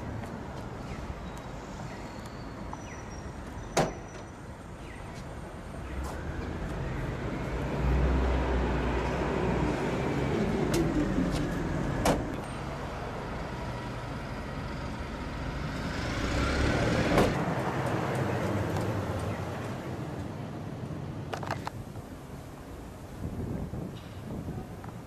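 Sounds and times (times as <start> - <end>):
road traffic passing: 0.0 - 25.0.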